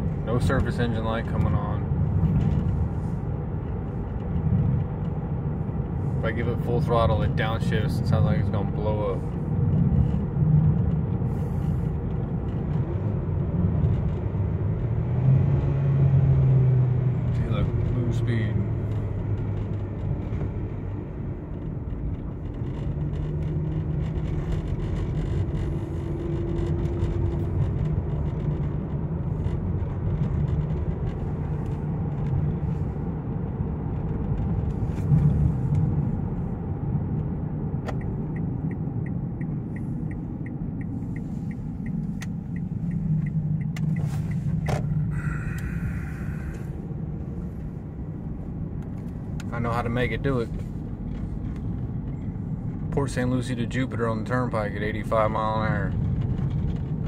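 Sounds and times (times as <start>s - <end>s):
car engine and road noise: 0.0s - 57.0s.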